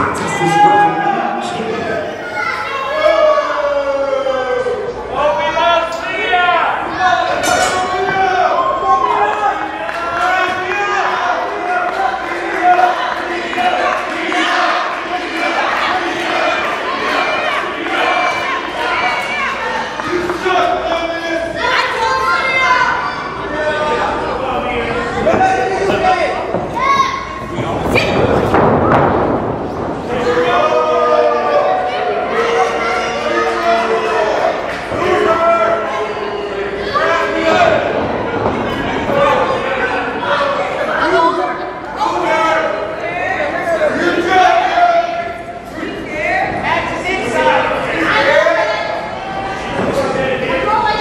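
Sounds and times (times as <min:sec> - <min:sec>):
people shouting: 0:29.7 - 0:41.2.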